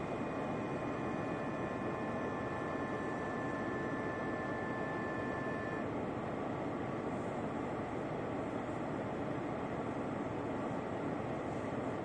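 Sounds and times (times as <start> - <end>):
faint steady whines: 0.0 - 12.0.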